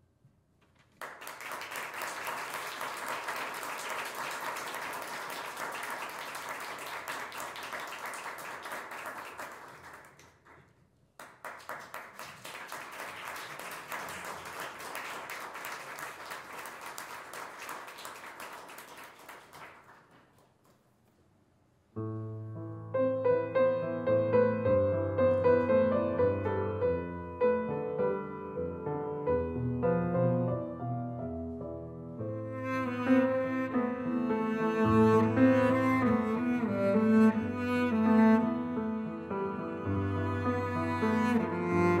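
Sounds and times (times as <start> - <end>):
small audience applauding: 0.8 - 20.9, 40.3 - 42.0.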